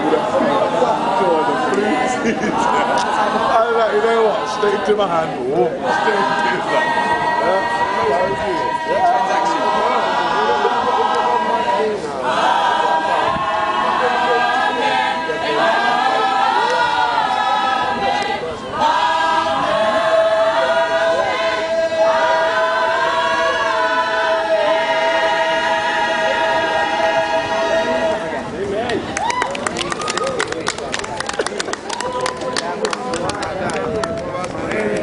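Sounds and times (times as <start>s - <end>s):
gospel choir singing: 0.0s - 28.7s.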